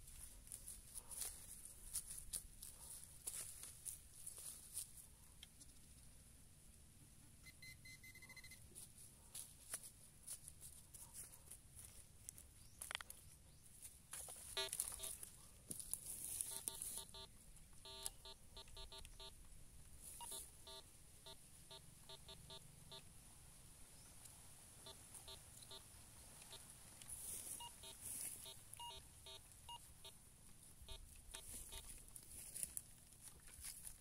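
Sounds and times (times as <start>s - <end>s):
metal detector beeps: 7.4s - 8.6s, 14.5s - 15.2s, 16.3s - 19.4s, 20.0s - 23.1s, 24.8s - 26.6s, 27.2s - 30.2s, 30.9s - 32.0s.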